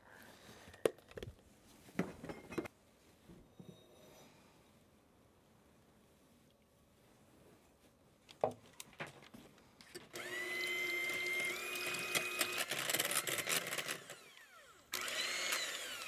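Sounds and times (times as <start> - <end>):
electric hand mixer whining: 10.1 - 16.0.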